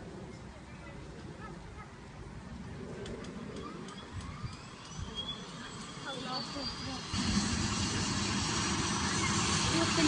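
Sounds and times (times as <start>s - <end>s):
helicopter turbine engines whining: 0.0s - 10.0s.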